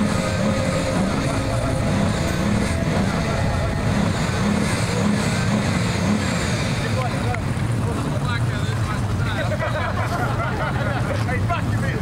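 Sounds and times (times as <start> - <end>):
indistinct voices: 0.0 - 9.2
car engine running: 0.0 - 10.1.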